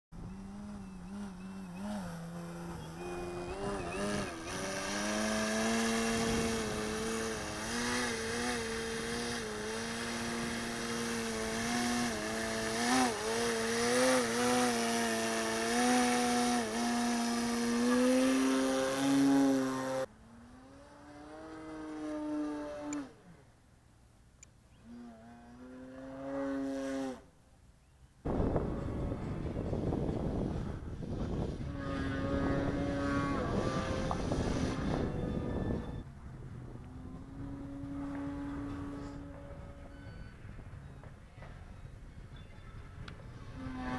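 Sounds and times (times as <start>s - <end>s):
broad rushing noise: 0.2s - 20.1s
model plane motor and propeller: 0.2s - 23.6s, 28.3s - 43.9s.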